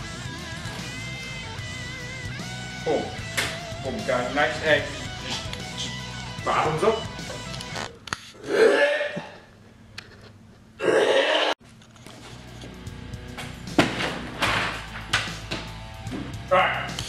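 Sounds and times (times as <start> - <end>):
background music: 0.0 - 8.0, 12.0 - 17.0.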